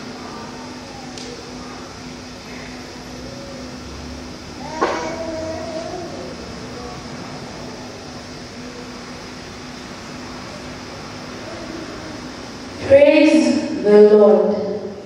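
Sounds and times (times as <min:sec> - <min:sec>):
steady low hum: 0:00.0 - 0:15.0
wavering cry: 0:04.5 - 0:07.2.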